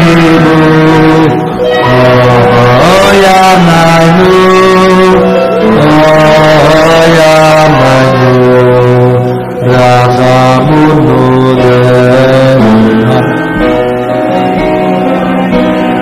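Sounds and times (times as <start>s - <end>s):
men singing together: 0.0s - 13.4s.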